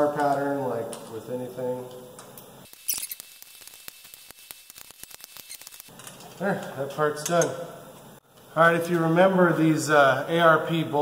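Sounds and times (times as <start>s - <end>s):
torque wrench ratchet clicking: 2.6s - 6.0s.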